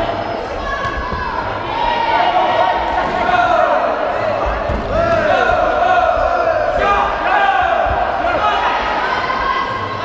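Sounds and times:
voices calling out in hall: 0.0 - 10.0.

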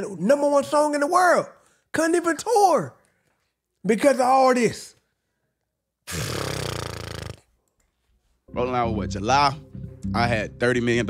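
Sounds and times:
man's raspy throat sound: 6.1 - 7.6.

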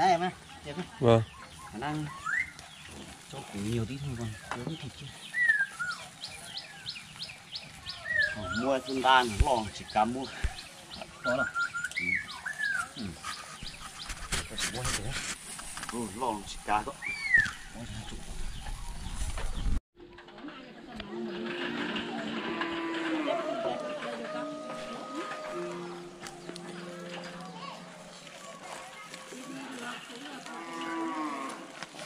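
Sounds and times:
whistled bird call: 2.1 - 2.6, 11.2 - 12.9, 17.0 - 17.7.

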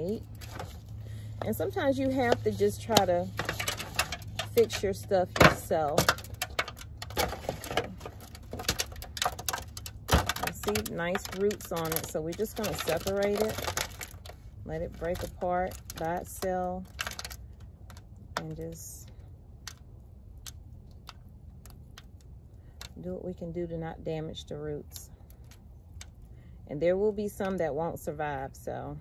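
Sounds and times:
soil crackling and crumbling: 0.0 - 28.8
low steady rumble: 0.0 - 29.0.

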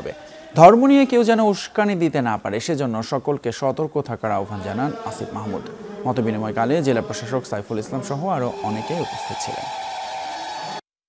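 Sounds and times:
voice trailing off: 4.5 - 9.7
crowd murmur: 4.9 - 9.7.

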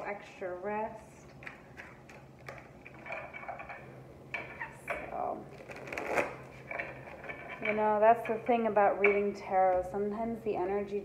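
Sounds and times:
cards being shuffled: 5.5 - 6.6.

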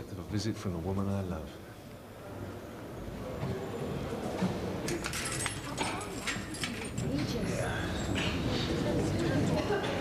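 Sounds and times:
faint murmuring voices: 1.4 - 10.0.

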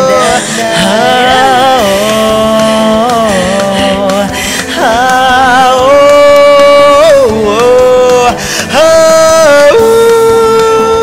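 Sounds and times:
wordless sung vocal: 0.0 - 11.0.

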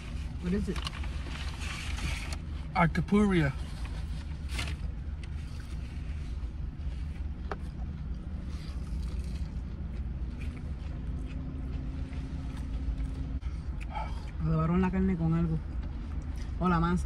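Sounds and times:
car engine idling: 0.0 - 17.0
chewing: 7.7 - 14.4.

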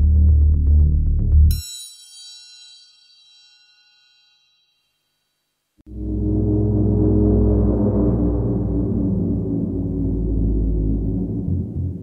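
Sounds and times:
bell-like metallic tone: 1.5 - 5.4.

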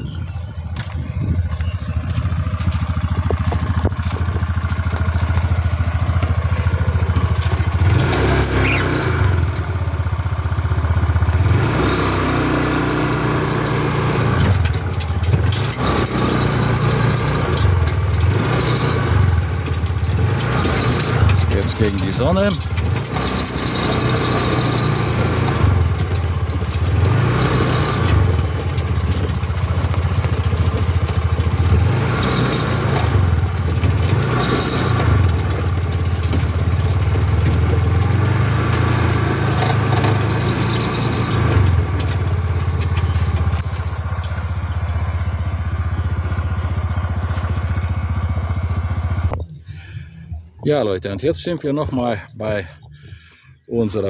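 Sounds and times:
small motorcycle engine running: 0.0 - 50.1.

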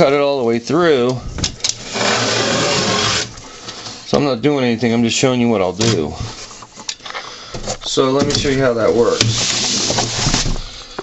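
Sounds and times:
knife scraping cardboard: 1.8 - 3.4.

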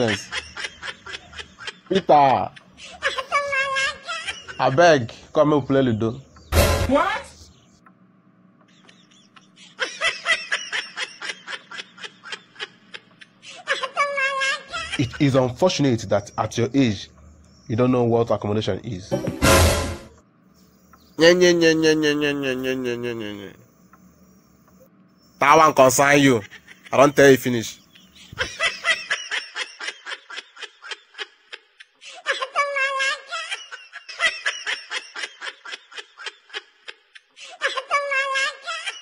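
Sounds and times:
person laughing: 21.2 - 23.6
person snickering: 21.3 - 23.6.

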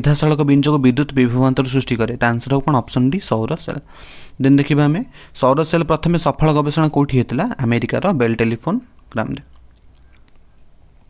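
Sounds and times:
background hiss: 0.0 - 11.0
faint small clicks: 9.0 - 10.7.

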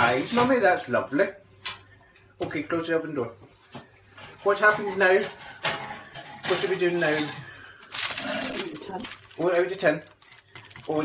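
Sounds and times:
woman's voice: 8.6 - 9.1.

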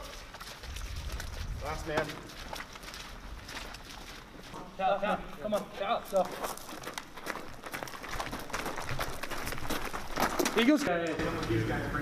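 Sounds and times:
running footsteps: 0.0 - 12.0.

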